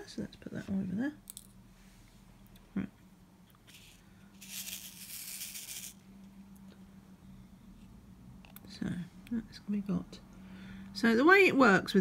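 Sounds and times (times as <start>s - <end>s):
small beads rattling in tray: 3.7s - 6.0s.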